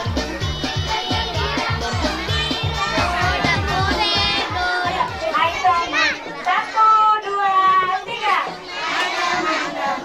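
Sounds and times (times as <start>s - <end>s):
background music with beat: 0.0s - 10.0s
young children chattering: 0.8s - 10.0s.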